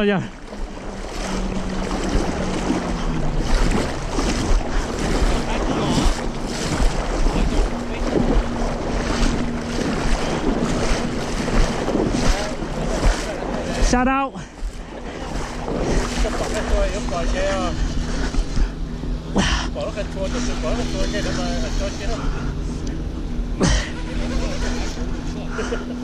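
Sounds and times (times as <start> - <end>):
wind buffeting microphone: 0.0 - 22.6
low motor hum: 0.0 - 26.0
water splashing beside boat: 0.0 - 26.0.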